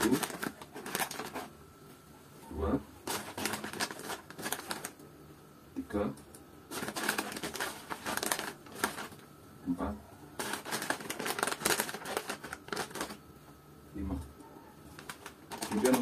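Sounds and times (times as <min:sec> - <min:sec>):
person speaking: 0:00.0 - 0:01.3, 0:15.5 - 0:16.0
oat flakes and packaging rustling: 0:00.0 - 0:01.6, 0:03.0 - 0:05.0, 0:06.7 - 0:09.3, 0:10.4 - 0:13.2, 0:14.8 - 0:16.0.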